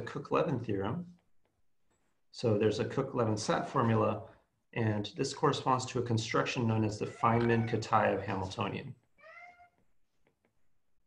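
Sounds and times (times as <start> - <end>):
cat meowing: 7.0 - 8.1, 9.2 - 9.8.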